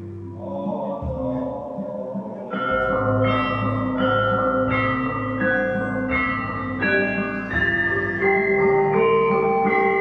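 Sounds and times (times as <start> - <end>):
gamelan metallophones ringing: 2.5 - 10.0.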